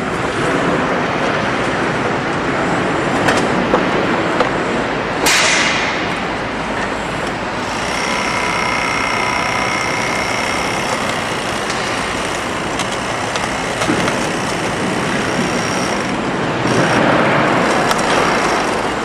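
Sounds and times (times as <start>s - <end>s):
demolition machine running: 0.0s - 19.0s
high whine: 4.2s - 19.0s
crusher working on concrete: 6.1s - 19.0s.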